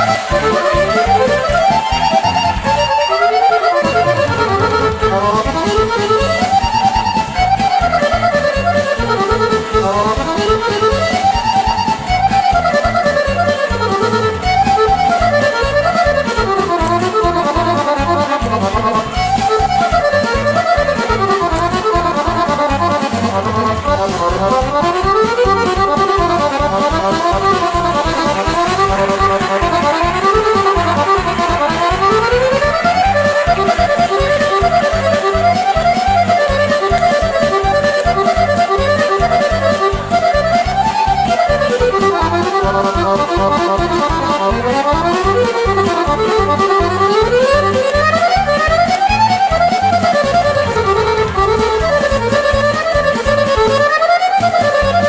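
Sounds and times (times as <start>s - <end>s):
accordion playing fast tune: 0.0s - 55.0s
rhythmic backing: 0.0s - 55.0s.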